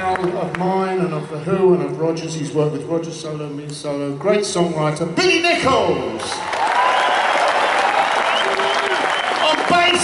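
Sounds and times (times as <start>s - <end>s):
audience applauding: 6.2s - 10.0s.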